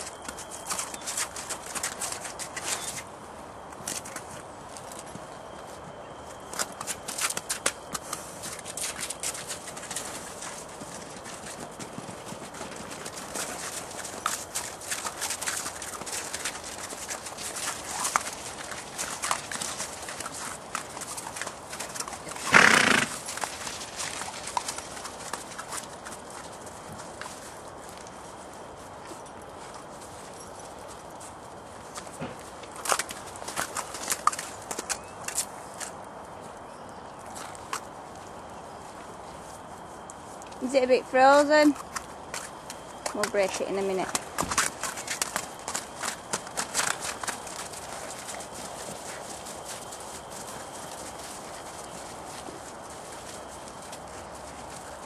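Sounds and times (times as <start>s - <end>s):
hooves clip-clopping on hard ground: 0.0s - 55.0s.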